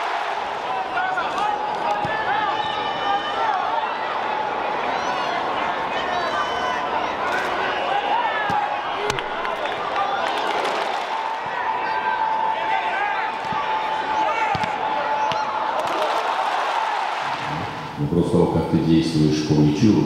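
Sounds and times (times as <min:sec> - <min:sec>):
stadium crowd shouting and chanting: 0:00.0 - 0:19.9
ball being kicked: 0:14.5 - 0:15.4.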